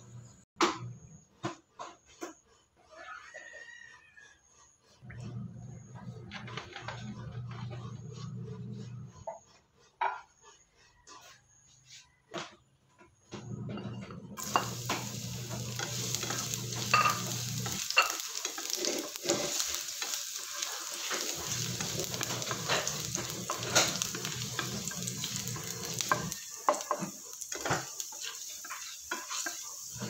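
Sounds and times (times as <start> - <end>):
plastic spatula scraping a pan: 6.2 - 12.2, 14.4 - 30.0
garlic sizzling in hot oil: 14.4 - 30.0.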